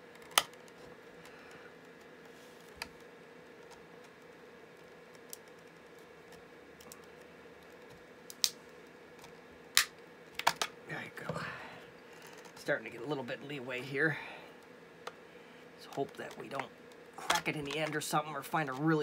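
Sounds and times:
faint steady hum: 0.0 - 19.0
plastic case clicks and snaps: 9.8 - 10.7.

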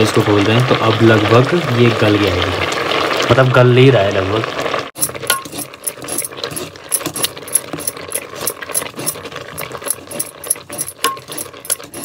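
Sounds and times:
boiling greens in a pot: 0.0 - 12.0
metal ladle scraping a pot: 5.0 - 12.0.

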